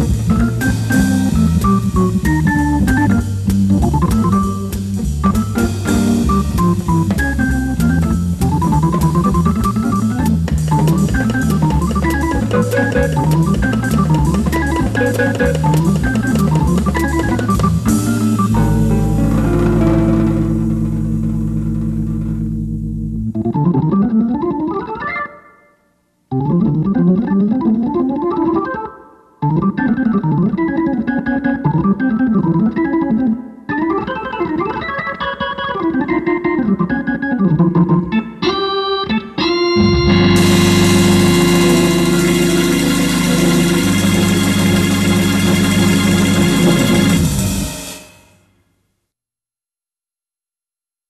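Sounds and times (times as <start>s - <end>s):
deep bass note: 0.0s - 23.9s, 39.8s - 47.8s
organ sustained chord: 5.3s - 24.4s, 38.1s - 47.8s
cymbal wash: 39.8s - 48.4s.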